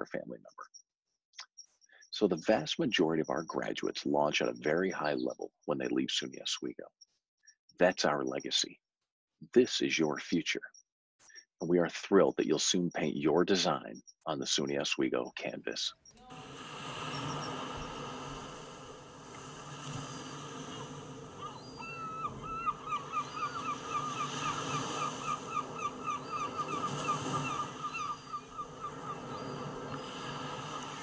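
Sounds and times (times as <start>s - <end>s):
small waves breaking on shore: 16.2s - 31.0s
geese honking: 20.2s - 29.7s.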